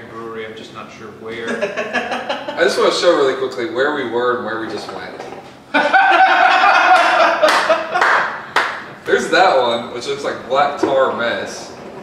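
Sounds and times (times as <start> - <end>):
man clapping hands: 6.9 - 8.9.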